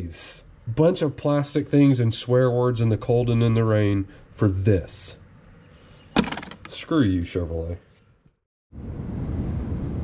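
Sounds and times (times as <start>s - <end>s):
low rumbling background noise: 0.0s - 7.8s.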